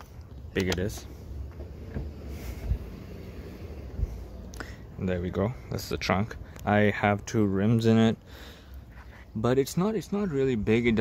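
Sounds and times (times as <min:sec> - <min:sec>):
car trunk lid unlatched and lifted: 0:00.6 - 0:04.0
wind rumble on microphone: 0:01.6 - 0:04.5.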